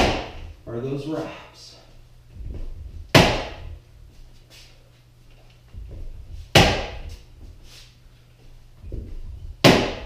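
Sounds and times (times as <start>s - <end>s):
sword striking padded post: 0.0s - 0.4s, 3.1s - 3.6s, 6.5s - 7.2s, 9.6s - 10.0s.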